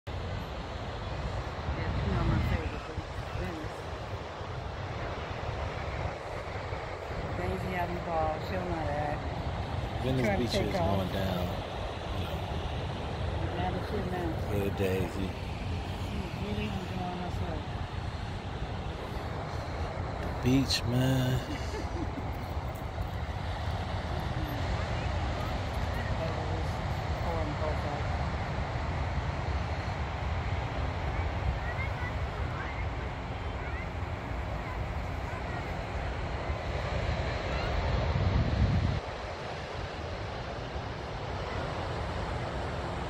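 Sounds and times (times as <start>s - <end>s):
ocean surf: 0.1s - 43.0s
wind buffeting microphone: 0.1s - 43.0s.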